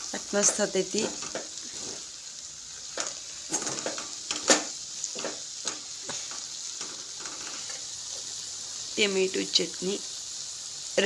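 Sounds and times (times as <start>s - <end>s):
food sizzling in a pan: 0.0s - 11.0s
metal spatula scraping pan: 0.4s - 2.1s.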